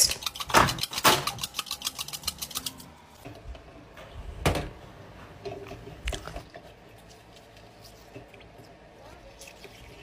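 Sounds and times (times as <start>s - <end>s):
egg rattling against a cup: 0.0s - 2.9s.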